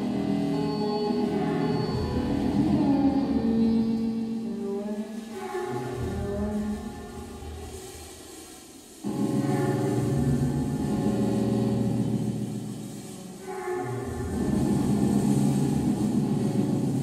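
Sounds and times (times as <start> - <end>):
rumbling electronic noise drone: 5.6 - 17.0.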